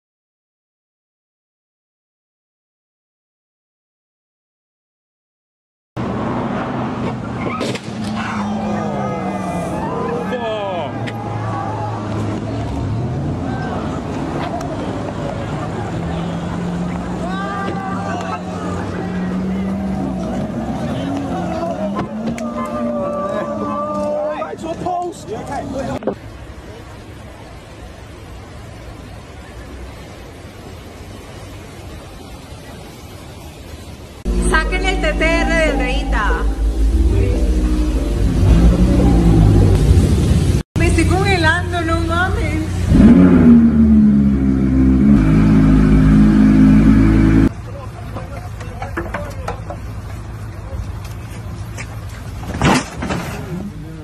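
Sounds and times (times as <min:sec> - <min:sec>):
people shouting: 0:08.1 - 0:12.3, 0:17.1 - 0:24.7, 0:34.6 - 0:39.5
crowd: 0:08.3 - 0:26.0
heavy low rumble: 0:34.2 - 0:47.6
car engine steady note: 0:34.3 - 0:48.4.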